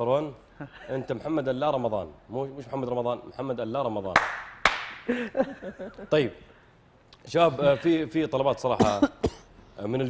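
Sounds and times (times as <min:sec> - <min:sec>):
sharp hand claps: 0:04.1 - 0:05.1.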